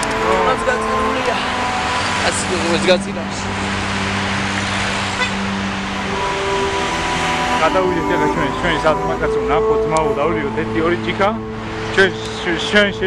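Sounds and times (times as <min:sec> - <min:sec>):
long held tone: 0:00.0 - 0:13.0
road traffic noise: 0:00.0 - 0:13.0.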